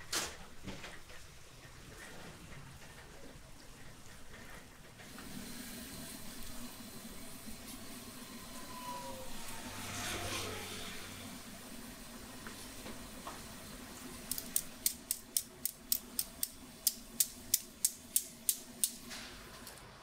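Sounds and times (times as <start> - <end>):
oil sizzling in wok: 5.1 - 18.8.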